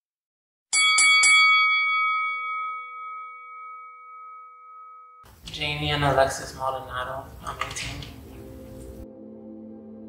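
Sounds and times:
bell-like chime: 0.7s - 5.3s.

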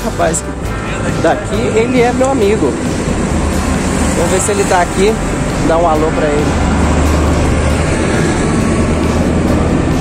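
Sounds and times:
low urban rumble: 0.0s - 10.0s.

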